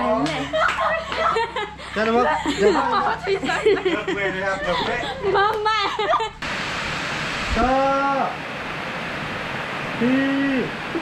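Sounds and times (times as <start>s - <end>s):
steady hiss: 6.2s - 11.0s.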